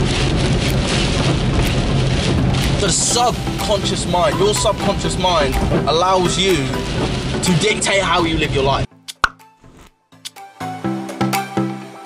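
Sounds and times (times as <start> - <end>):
upbeat music with plucked beat: 0.6 - 12.0
sharp pop sound effect: 9.1 - 9.9.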